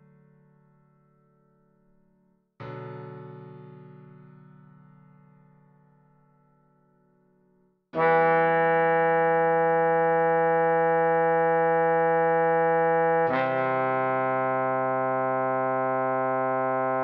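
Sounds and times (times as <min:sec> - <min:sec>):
trombone holding long notes: 0:08.0 - 0:17.0.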